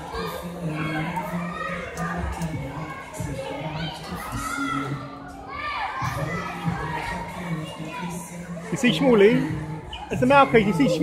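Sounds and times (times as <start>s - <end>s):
children shouting: 0.0s - 11.0s
crowd din: 0.0s - 11.0s.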